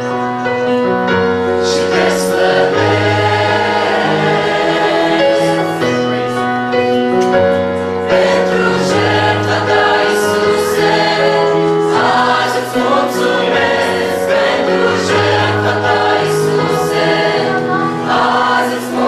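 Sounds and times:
mixed choir singing a hymn: 0.8 - 19.0.

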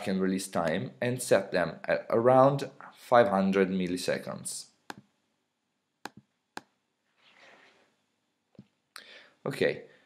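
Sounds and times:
mouse clicks: 4.9 - 5.1, 6.0 - 6.8.

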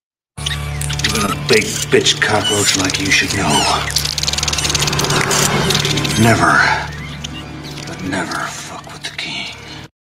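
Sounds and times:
rapid rattling buzz: 1.8 - 6.5.

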